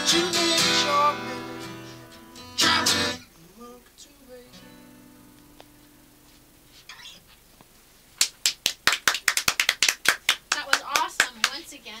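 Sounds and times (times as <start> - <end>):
people clapping: 8.2 - 11.6
voices: 10.5 - 12.0.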